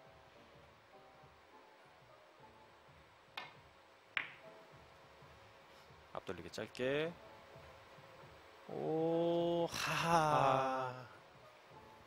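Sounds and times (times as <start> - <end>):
billiard balls clicking together: 4.2 - 4.4
cue tip striking ball: 4.2 - 4.4.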